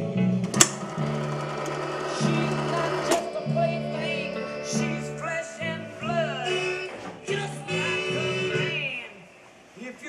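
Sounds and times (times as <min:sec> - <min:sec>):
old recorded music with bass line: 0:00.0 - 0:09.1.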